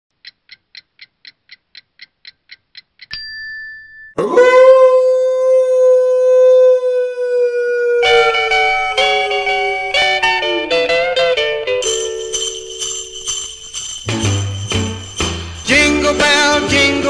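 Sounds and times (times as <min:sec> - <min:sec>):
quick light ticks: 0:00.2 - 0:03.2.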